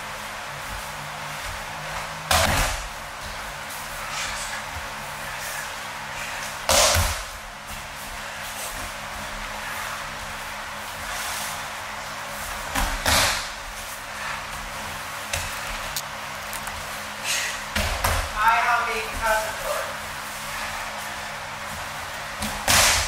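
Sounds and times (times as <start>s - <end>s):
bodies thudding onto a mat: 2.3s - 3.0s, 12.6s - 13.7s, 22.4s - 23.0s.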